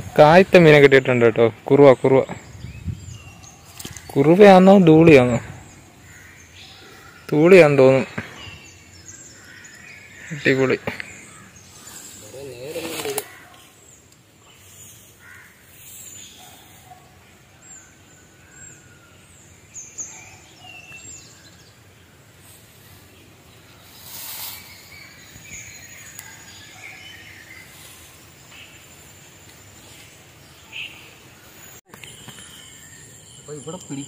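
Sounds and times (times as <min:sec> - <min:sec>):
birds chirping: 0:00.0 - 0:34.0
faint outdoor ambience: 0:00.0 - 0:34.0.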